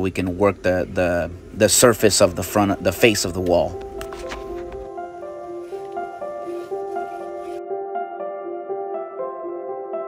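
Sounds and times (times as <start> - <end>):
soft background music: 1.6 - 10.0.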